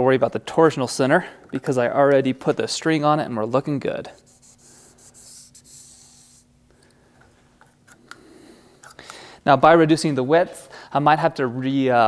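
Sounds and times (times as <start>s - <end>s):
marker pen scratching on bow limb: 4.1s - 6.5s.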